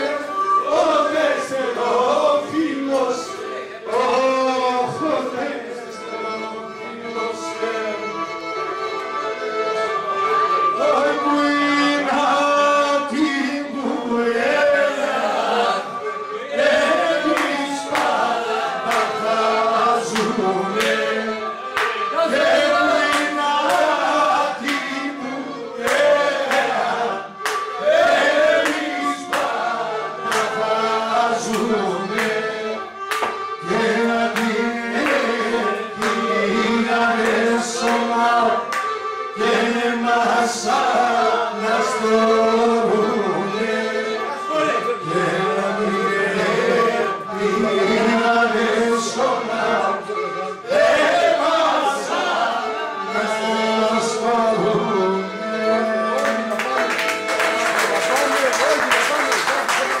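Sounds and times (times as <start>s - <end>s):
man singing: 0.0s - 8.4s, 10.6s - 15.9s, 16.6s - 27.2s, 28.4s - 32.8s, 33.6s - 38.7s, 39.3s - 50.7s, 51.3s - 56.8s
bowed fiddle melody: 0.0s - 58.6s.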